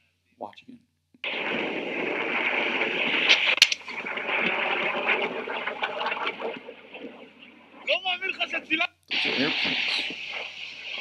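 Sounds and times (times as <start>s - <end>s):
sharp crack: 1.2s - 11.0s.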